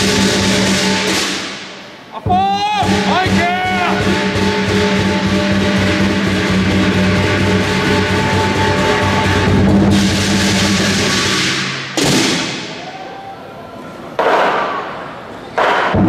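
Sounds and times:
drum cymbals and gong ensemble: 0.0s - 13.0s.

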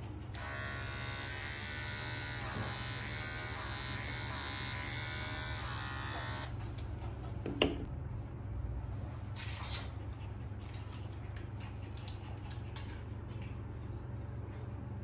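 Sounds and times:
electric hair clippers running: 0.4s - 6.5s.

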